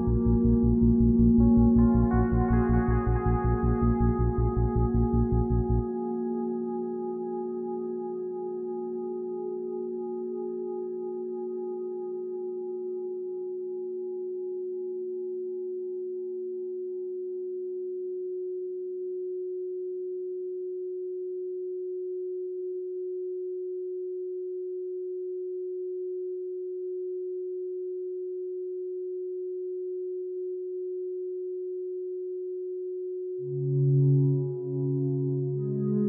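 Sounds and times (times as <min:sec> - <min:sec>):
steady electronic pure tone: 0:00.0 - 0:14.8, 0:33.4 - 0:36.0
faint tones above and below: 0:00.0 - 0:15.9, 0:33.4 - 0:36.0.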